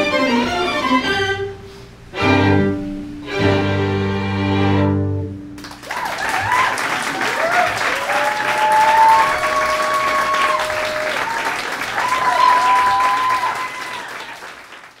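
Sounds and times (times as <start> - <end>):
audience applauding: 5.6 - 15.0.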